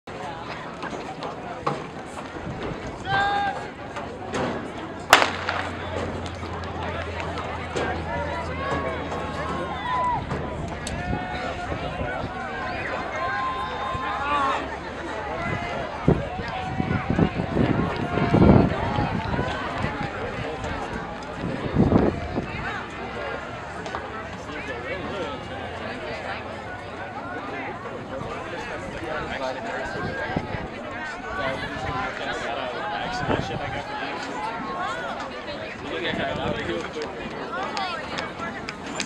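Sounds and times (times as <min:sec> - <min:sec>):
spectators chatting: 0:00.0 - 0:39.0
people talking and calling out: 0:00.1 - 0:39.0
starting gun crack: 0:05.1 - 0:07.4
low rumble on microphone: 0:15.4 - 0:23.2.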